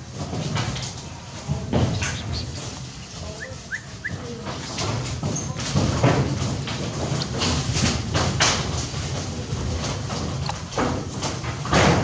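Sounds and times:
small animal squeaks: 1.9 - 4.8.

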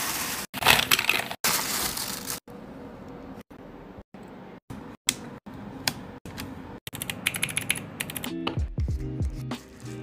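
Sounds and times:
mechanical keyboard clicking: 6.9 - 8.3.

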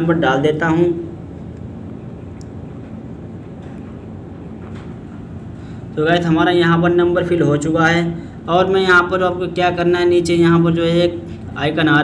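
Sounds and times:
faint hum: 0.0 - 12.0.

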